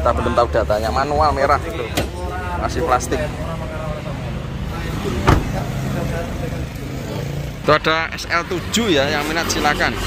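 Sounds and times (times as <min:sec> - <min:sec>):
car engine idling: 0:03.8 - 0:06.8
car door shutting: 0:05.1 - 0:05.8.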